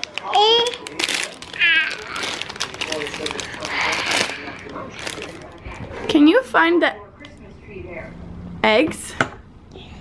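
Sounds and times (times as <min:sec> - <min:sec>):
toddler high-pitched vocal sounds: 0:00.2 - 0:00.8, 0:01.6 - 0:02.4.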